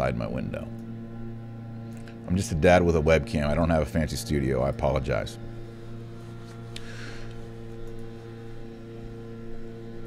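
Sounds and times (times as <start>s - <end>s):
leaf blower engine hum: 5.8s - 8.7s.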